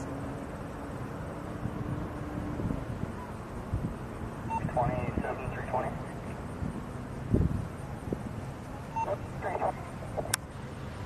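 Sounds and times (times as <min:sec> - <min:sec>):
low outdoor rumble: 0:00.0 - 0:11.0
faint distant voices: 0:07.8 - 0:10.3.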